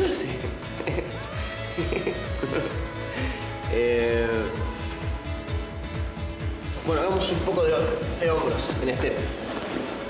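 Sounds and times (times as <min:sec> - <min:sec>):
upbeat workout music: 0:00.0 - 0:10.0.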